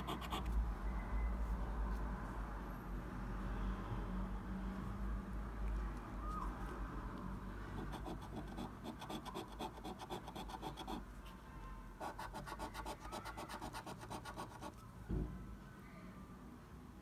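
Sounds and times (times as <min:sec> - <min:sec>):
coin scraping scratch card: 0:00.0 - 0:00.5, 0:07.8 - 0:11.0.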